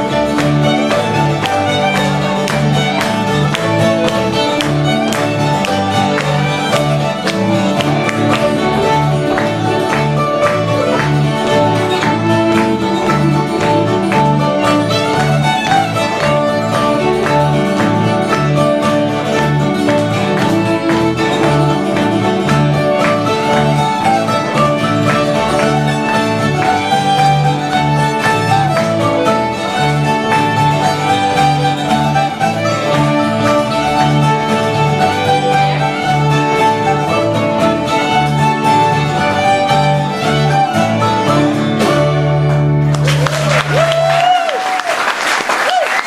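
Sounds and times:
upright bass notes: 0.0 - 43.5
fiddle melody: 0.0 - 43.8
guitar and plucked strings: 0.0 - 43.8.

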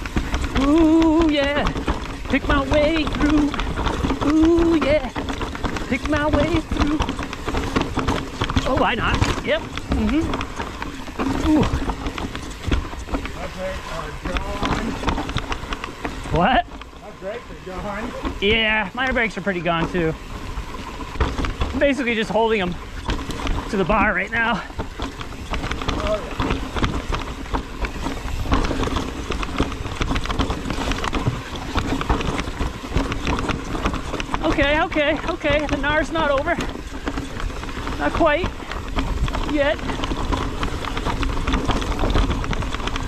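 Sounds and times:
bike clattering over rocks: 0.0 - 43.0.

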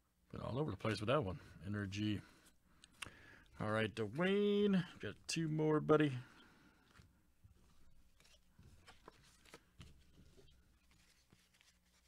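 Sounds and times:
trading cards clicking and rustling: 7.6 - 12.0.

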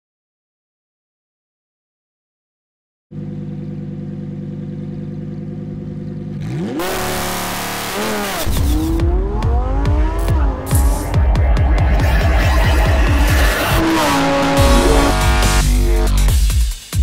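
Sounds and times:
car engine idling and revving: 3.1 - 17.0
electronic music with bass beat: 6.8 - 17.0.

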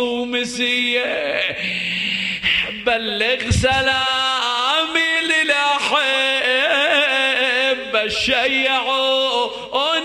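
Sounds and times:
man singing an elegy: 0.0 - 1.8, 2.7 - 10.0.

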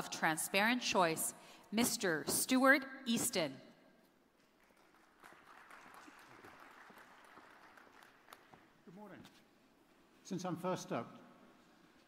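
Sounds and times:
audience applause: 4.6 - 8.6.

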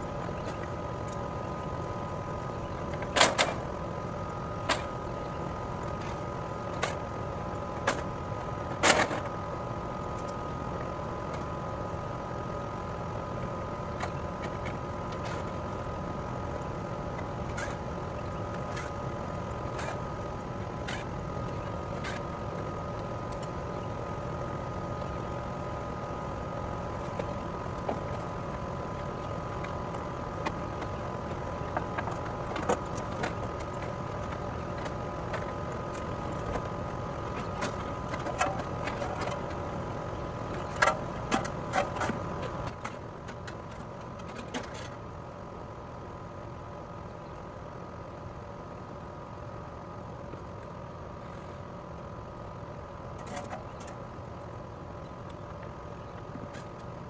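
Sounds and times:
machine hum: 0.0 - 57.0.

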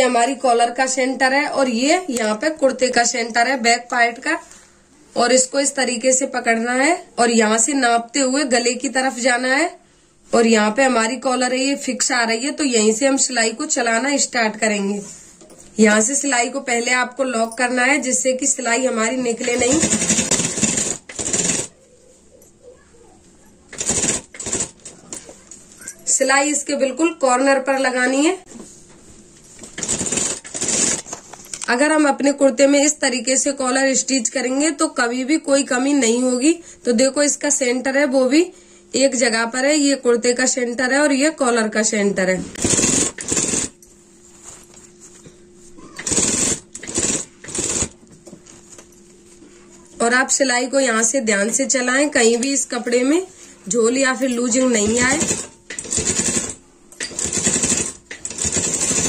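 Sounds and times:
sewing machine stitching: 19.1 - 21.7, 23.7 - 25.2, 29.6 - 31.2, 42.6 - 43.8, 46.0 - 48.0, 54.5 - 59.0.

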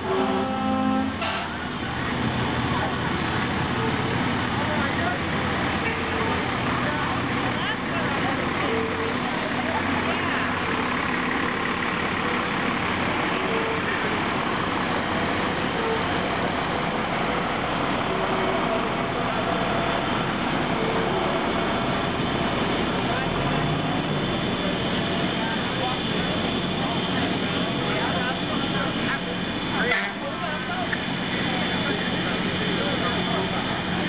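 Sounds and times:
people's voices: 0.0 - 34.0
truck engine passing: 0.0 - 34.0.

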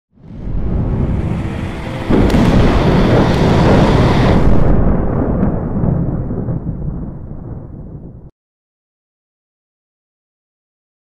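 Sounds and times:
thunder crack and rumble: 0.2 - 8.3.

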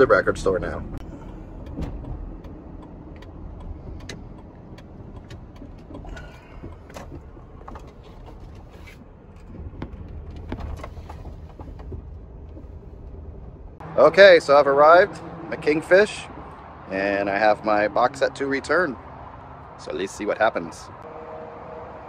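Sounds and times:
car cabin road rumble: 0.0 - 21.1.

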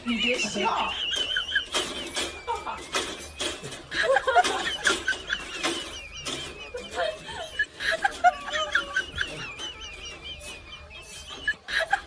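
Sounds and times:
dog whining: 4.6 - 11.8.

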